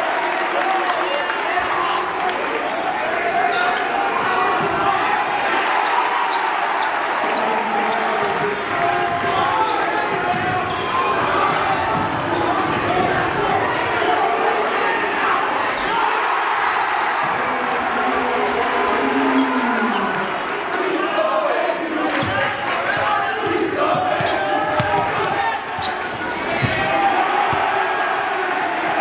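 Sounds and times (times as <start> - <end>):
crowd voices: 0.0 - 29.0.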